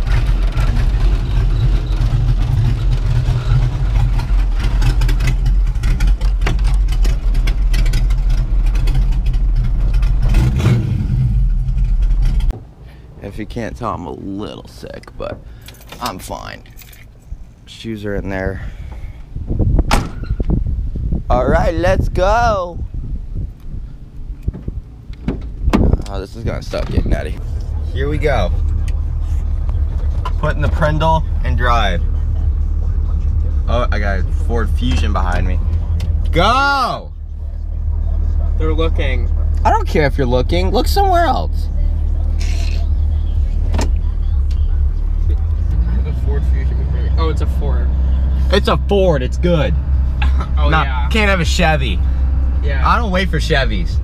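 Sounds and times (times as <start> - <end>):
low rumble: 0.0 - 14.8, 16.7 - 54.0
road noise: 0.0 - 54.0
car door slamming: 19.8 - 20.4, 24.5 - 26.0.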